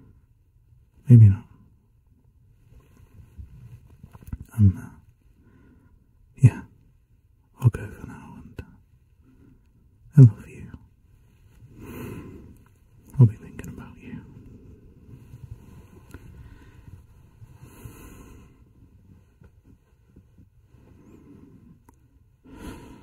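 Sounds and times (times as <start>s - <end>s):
man breathing deeply: 5.4s - 6.0s, 11.6s - 12.8s, 14.2s - 19.2s, 20.7s - 23.0s.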